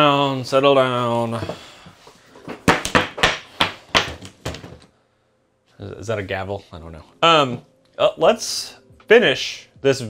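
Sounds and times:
gavel rapping on wood: 2.6 - 4.4.

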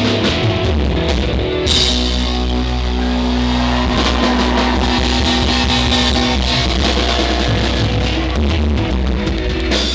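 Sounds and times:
live rock band playing: 0.0 - 9.9.

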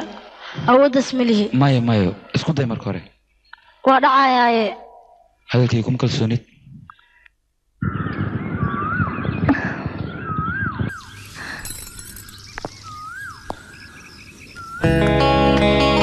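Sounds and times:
rising and falling whistle-like tone: 7.8 - 11.2.

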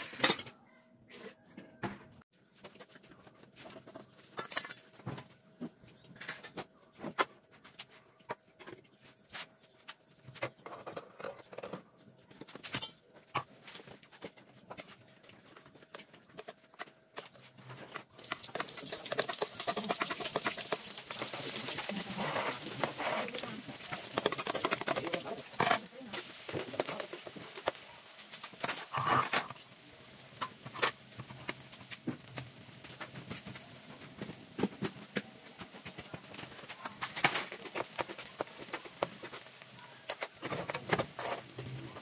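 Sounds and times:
onion and garlic sizzling in oil: 15.6 - 42.0
metal spoon scraping wok: 18.2 - 27.8.

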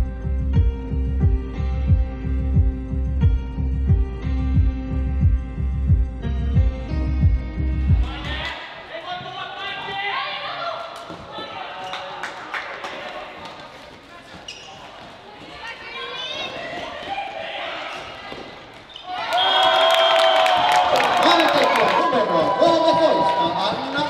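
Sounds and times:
spectators cheering and clapping: 11.0 - 13.6, 19.0 - 24.0.

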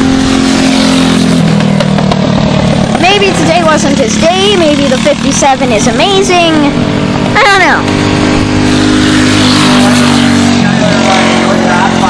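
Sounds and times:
kart engines passing: 0.0 - 12.0.

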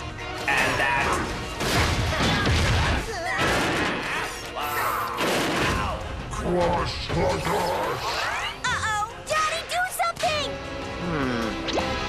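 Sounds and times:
action music with crashing impacts: 0.0 - 8.7.

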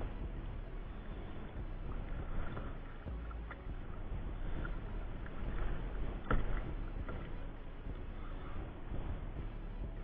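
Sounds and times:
water lapping against kayak: 0.0 - 10.0
wind rumbling on microphone: 0.0 - 10.0.

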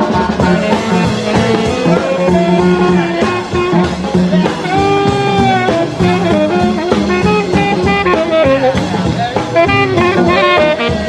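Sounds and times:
rock and roll band playing: 0.0 - 11.0.

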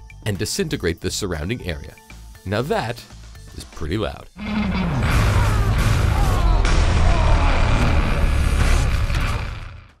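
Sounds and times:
film sound effects: 2.6 - 10.0
bass-heavy music: 4.4 - 10.0.

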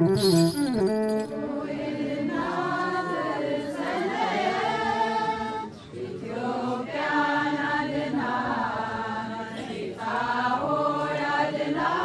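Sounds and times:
choir singing a hymn: 1.3 - 12.0.

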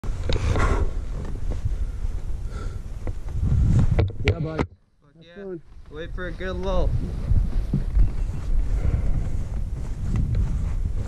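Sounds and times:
wind rumbling on microphone: 0.0 - 4.7, 5.4 - 11.0.

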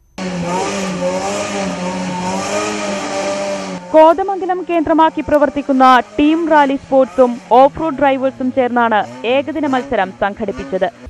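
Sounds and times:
engine revving hard: 0.1 - 11.0.

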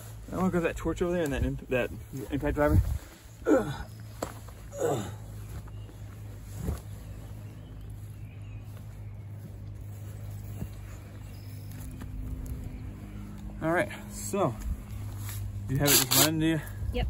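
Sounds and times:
rustling and scuffing in dirt: 0.0 - 17.0
steady low hum: 0.0 - 17.0.

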